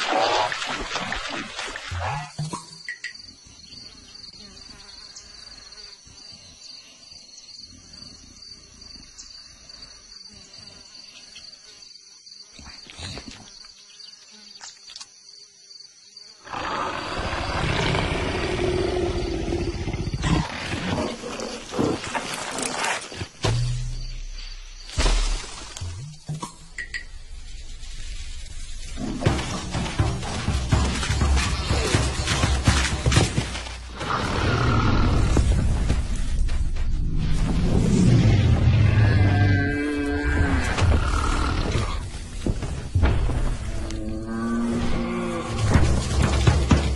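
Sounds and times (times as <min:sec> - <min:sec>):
faint insect chirping: 0:02.6 - 0:29.0
big cat roaring: 0:16.4 - 0:22.1.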